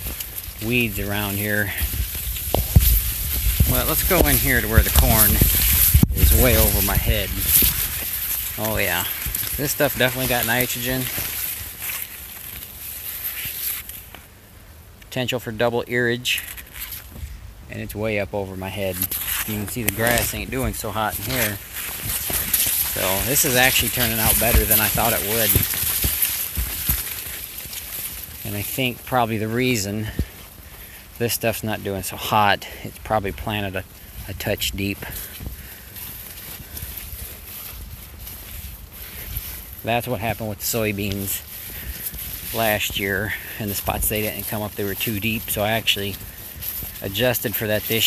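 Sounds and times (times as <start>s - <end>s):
wind rumble on microphone: 0.0s - 9.8s
corn leaves rustling: 0.0s - 14.5s, 15.3s - 48.0s.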